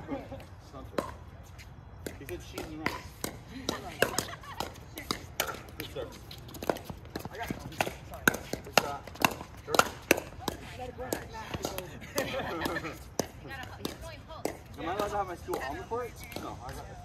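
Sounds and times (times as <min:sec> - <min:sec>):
ball bouncing on hard court: 0:00.8 - 0:01.3, 0:02.0 - 0:16.8
paddles striking plastic ball: 0:06.6 - 0:11.9.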